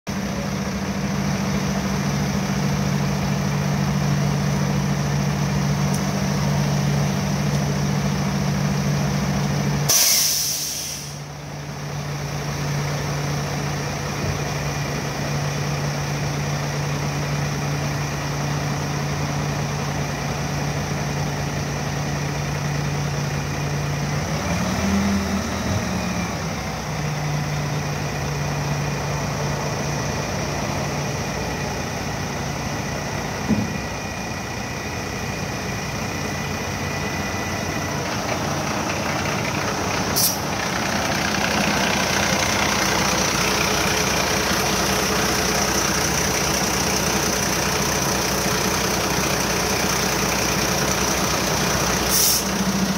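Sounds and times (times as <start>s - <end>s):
diesel truck engine running: 0.1s - 52.9s
loud hydraulic hiss: 9.9s - 11.3s, 40.2s - 40.5s, 52.0s - 52.6s.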